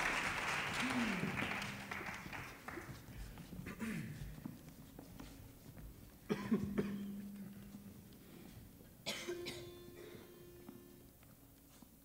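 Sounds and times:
person coughing: 3.6 - 4.3, 6.3 - 7.3, 9.0 - 10.4.

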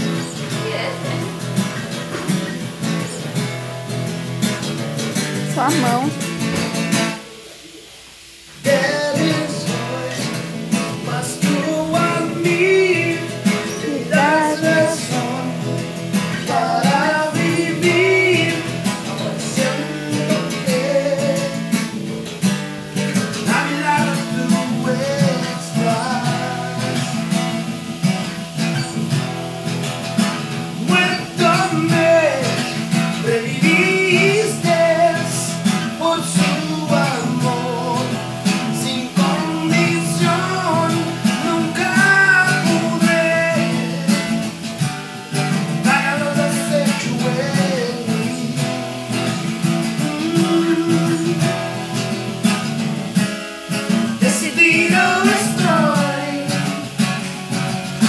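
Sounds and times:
acoustic guitar strumming: 0.0 - 58.0
person singing: 5.5 - 6.2, 8.6 - 22.2, 23.2 - 29.1, 30.6 - 44.6, 45.5 - 52.1, 54.0 - 57.0.

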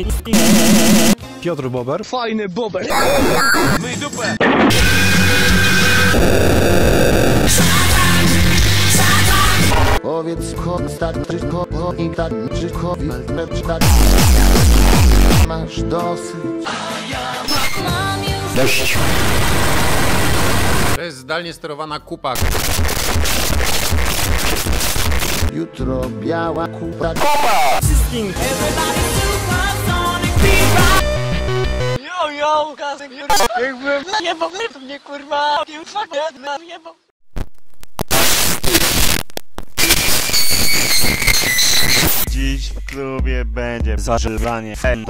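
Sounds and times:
harsh digital glitch noise: 0.3 - 1.2, 2.9 - 3.8, 4.4 - 10.0, 13.8 - 15.5, 18.6 - 21.0, 22.4 - 25.5, 37.4 - 42.3.

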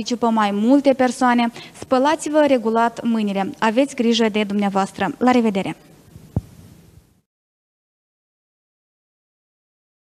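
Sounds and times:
faint room hum: 0.0 - 7.3
short low thump: 6.2 - 6.8.

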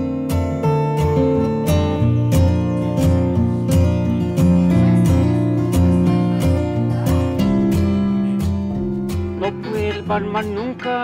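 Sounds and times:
acoustic guitar strumming: 0.0 - 11.0
man singing: 9.1 - 11.0.

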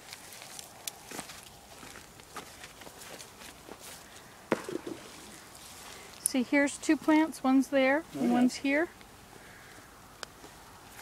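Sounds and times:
footsteps on grass and soil: 0.0 - 6.2.

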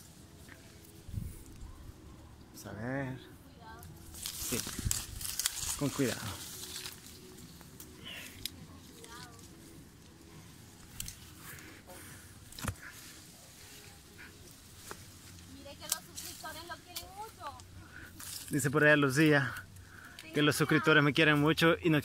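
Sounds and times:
leaves and twigs rustling: 0.0 - 22.0
twig snapping: 3.8 - 11.7, 12.4 - 13.3, 14.4 - 18.7.

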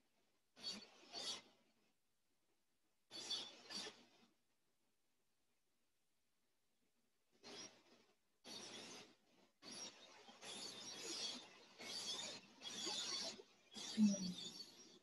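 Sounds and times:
small bird chirps: 0.6 - 1.5, 3.1 - 4.3, 7.4 - 15.0.

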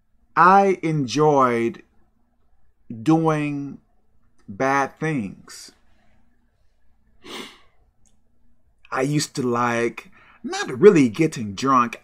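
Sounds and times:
man breathing out: 7.2 - 7.8.

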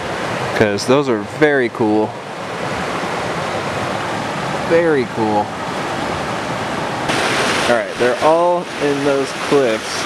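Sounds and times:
creek water rushing: 0.0 - 10.0.

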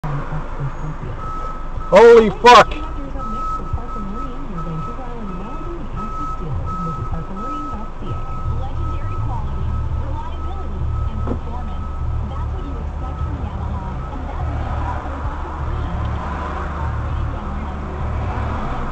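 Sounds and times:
engine and road rumble: 0.0 - 18.9
indistinct voices: 0.0 - 18.9.

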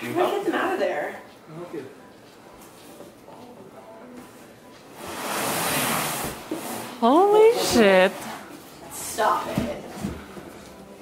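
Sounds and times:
bag scraping against cardboard: 5.0 - 8.5.

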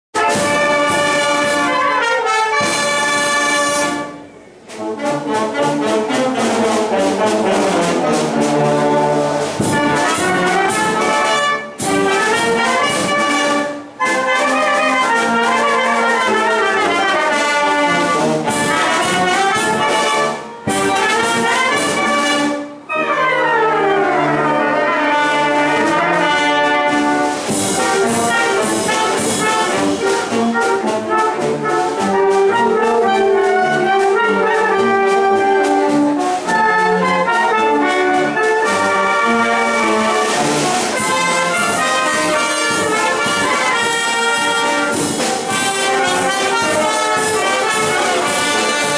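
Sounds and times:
wind band playing: 0.1 - 48.9.

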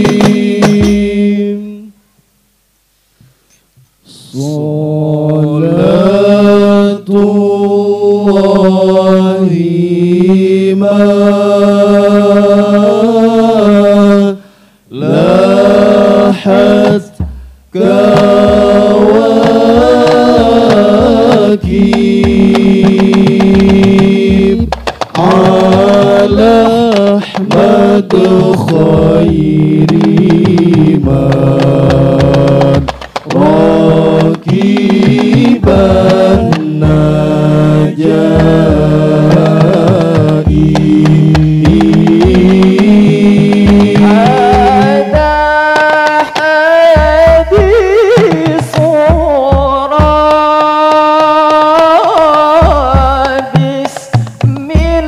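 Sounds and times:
quick percussive taps: 0.0 - 1.3, 7.2 - 9.3, 10.0 - 13.4, 15.8 - 55.0
men chanting in unison: 0.0 - 1.9, 4.1 - 55.0.

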